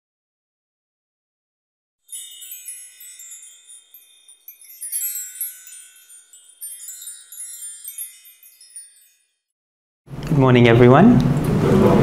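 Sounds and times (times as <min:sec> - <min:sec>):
high tinkling chimes: 0:02.1 - 0:09.6.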